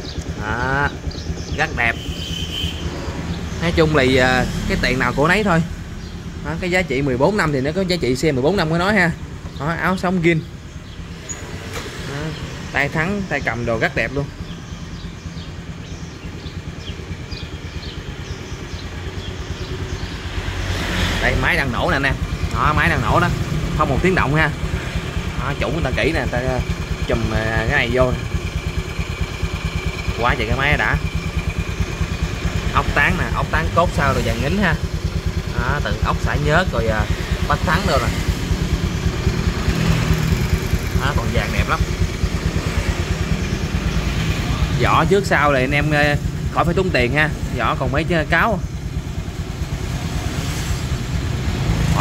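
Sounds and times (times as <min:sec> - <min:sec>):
scooter engine idling: 0:00.0 - 0:52.0.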